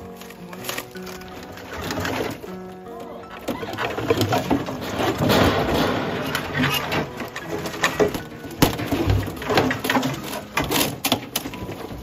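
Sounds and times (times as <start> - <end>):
debris knocking and clattering: 0.0 - 12.0
rough scraping: 0.0 - 12.0.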